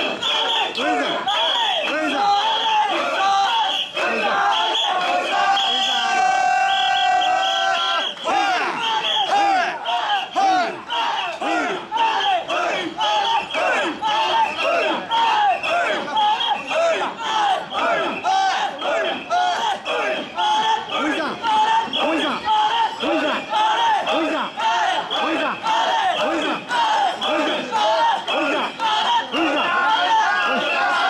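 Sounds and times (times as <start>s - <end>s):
crowd shouting rhythmic chant: 0.0s - 31.0s.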